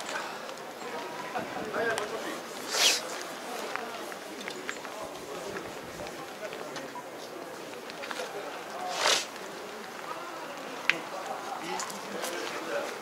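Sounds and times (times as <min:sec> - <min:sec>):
distant people chattering: 0:00.0 - 0:13.0
short hiss: 0:02.6 - 0:03.2, 0:08.8 - 0:09.3.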